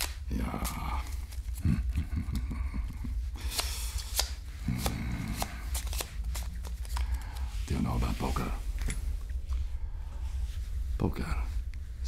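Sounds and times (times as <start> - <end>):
playing cards clicking: 0.0 - 8.2
steady low hum: 0.0 - 12.0
man chuckling: 1.6 - 3.2
man humming mm: 4.6 - 5.8.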